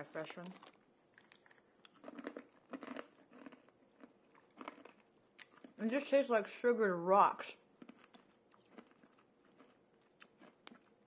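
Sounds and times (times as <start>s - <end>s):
hard candy crunching: 0.0s - 6.2s, 7.4s - 11.0s.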